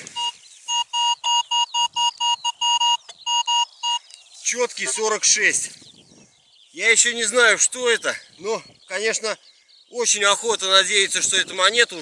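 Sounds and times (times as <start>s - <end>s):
metal detector short beeps: 0.1s - 4.0s.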